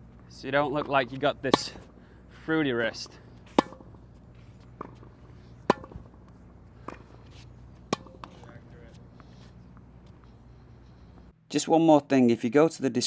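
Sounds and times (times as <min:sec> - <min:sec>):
racket hitting tennis ball: 0:00.8 - 0:02.0, 0:03.4 - 0:10.2.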